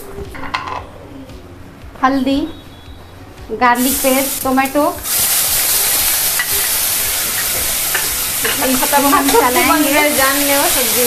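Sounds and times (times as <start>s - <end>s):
food sizzling in hot oil: 3.6s - 11.0s.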